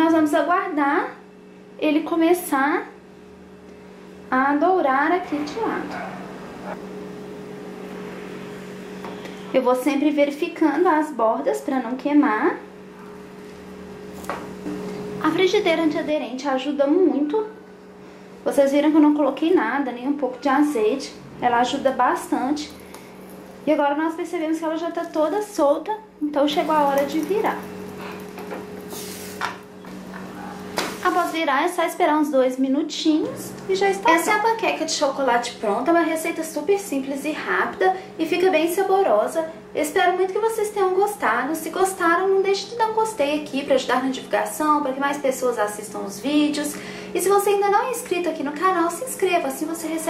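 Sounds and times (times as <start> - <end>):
batter hissing in frying pan: 26.6 - 29.5, 30.8 - 31.5.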